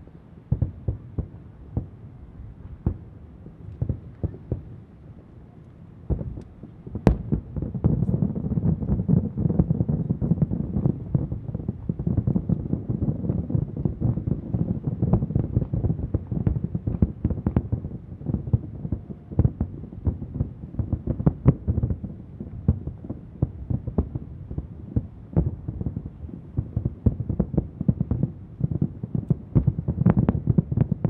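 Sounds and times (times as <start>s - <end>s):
distant fireworks bursting: 0.4s - 31.0s.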